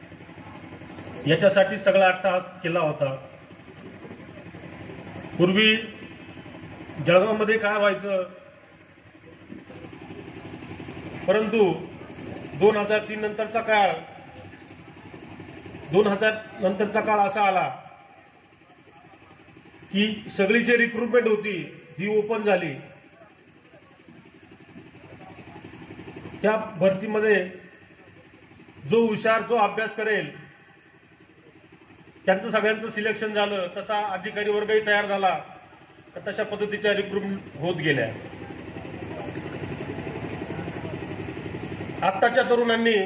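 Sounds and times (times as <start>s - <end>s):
engine idling hum: 0.0s - 43.0s.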